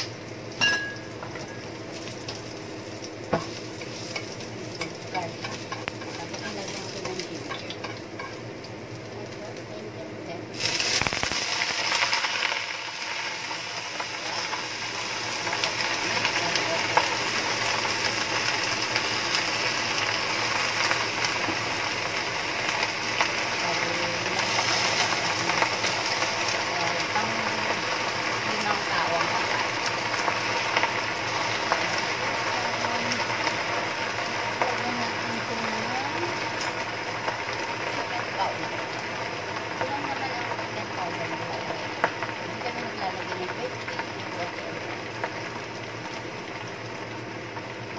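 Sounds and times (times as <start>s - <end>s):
garlic sizzling in oil: 0.0s - 47.9s
vegetables frying loudly: 0.0s - 47.9s.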